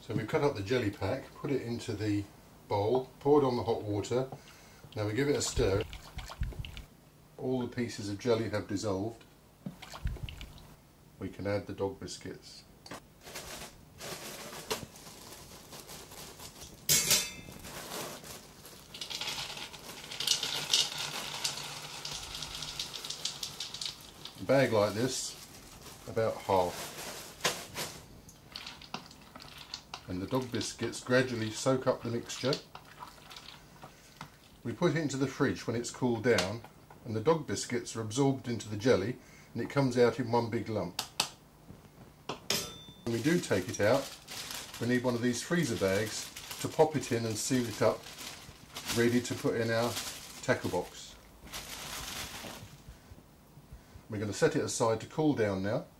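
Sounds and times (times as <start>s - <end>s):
dog biscuits rattling into a bowl: 18.0s - 24.1s.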